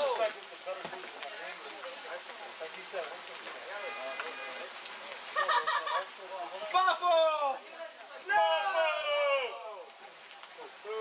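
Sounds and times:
people yelling: 8.2s - 9.9s.

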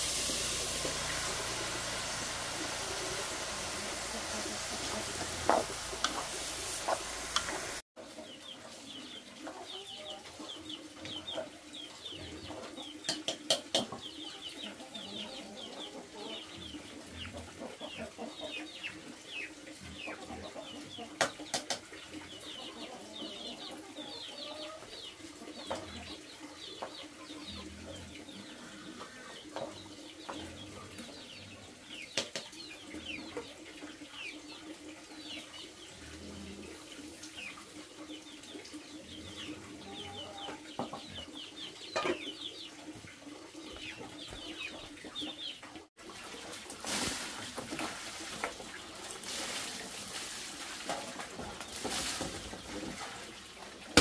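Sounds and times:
birds chirping: 0.6s - 7.8s.

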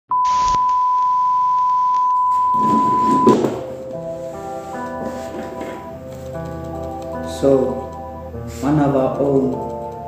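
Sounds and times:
high-pitched test tone beep: 0.1s - 3.5s.

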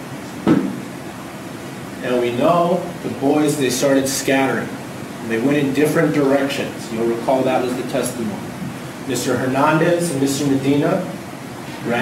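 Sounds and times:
room tone hiss: 0.0s - 12.0s
short thump: 0.4s - 0.8s.

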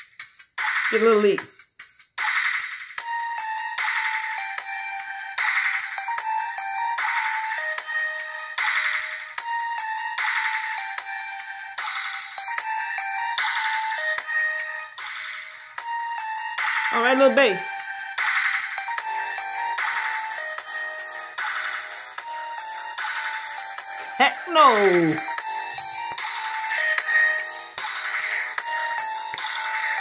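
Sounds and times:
synth lead melody: 18.8s - 30.0s.

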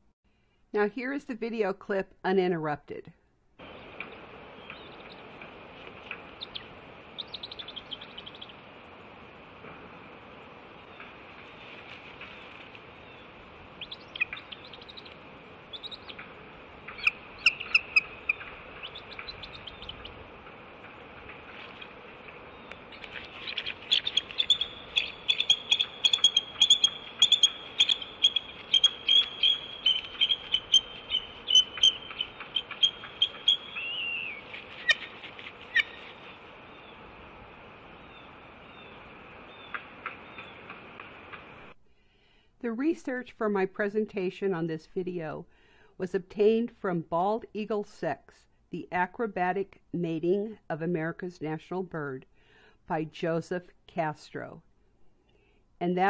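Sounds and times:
eagle rapid chittering: 3.6s - 8.6s, 13.7s - 36.3s
eagle high calls: 13.0s - 20.2s, 21.8s - 36.9s.

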